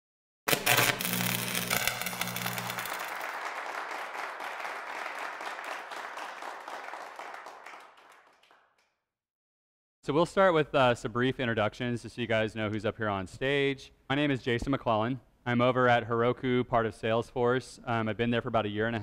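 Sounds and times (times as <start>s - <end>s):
audience applause: 1.9s - 8.7s.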